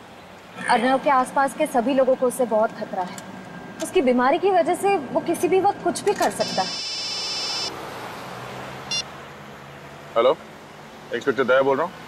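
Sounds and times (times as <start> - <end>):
car engine hum in cabin: 0.0 - 12.0
mobile phone beep: 6.4 - 7.7.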